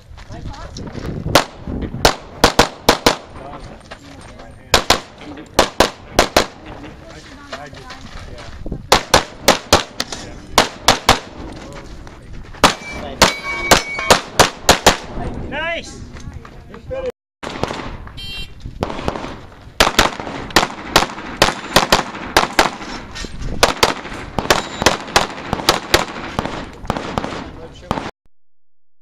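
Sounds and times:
pistol shots: 0:01.3 - 0:03.4, 0:04.7 - 0:06.6, 0:08.9 - 0:11.4, 0:12.6 - 0:15.1, 0:17.4 - 0:18.0, 0:18.8 - 0:28.1.

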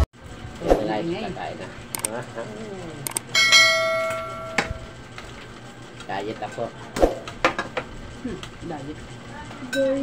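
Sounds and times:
bright bell chime: 0:03.4 - 0:04.9.

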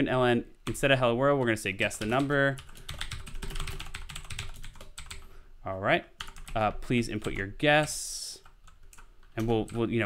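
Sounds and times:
computer keyboard typing: 0:01.8 - 0:05.3, 0:06.2 - 0:10.0.

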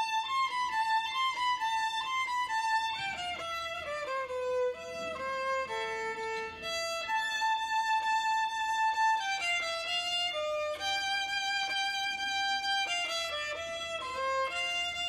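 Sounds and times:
solo violin melody: 0:00.0 - 0:15.0.

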